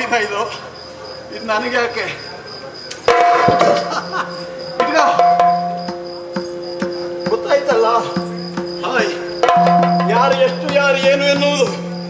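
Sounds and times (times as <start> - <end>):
small hand cymbals ringing: 1.1 - 12.0.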